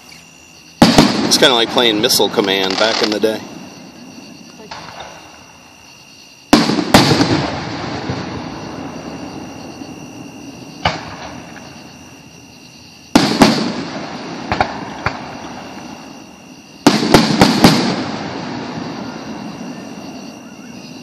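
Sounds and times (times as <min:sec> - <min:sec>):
fireworks exploding: 0:00.8 - 0:05.6, 0:06.5 - 0:12.2, 0:13.1 - 0:21.0
small firework pops: 0:10.8 - 0:11.7, 0:14.5 - 0:15.3.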